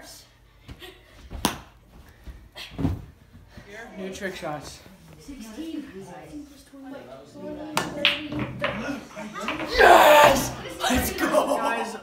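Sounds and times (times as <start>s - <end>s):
billiard balls clicking: 7.7s - 10.8s
pool cue striking cue ball: 7.7s - 11.1s.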